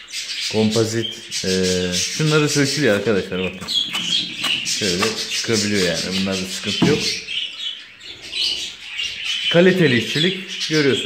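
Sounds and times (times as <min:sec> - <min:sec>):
budgerigars chirping: 0:00.0 - 0:11.0.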